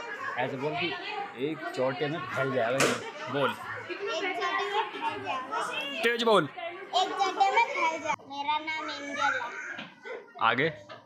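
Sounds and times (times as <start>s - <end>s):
young girl speaking: 7.0s - 9.7s.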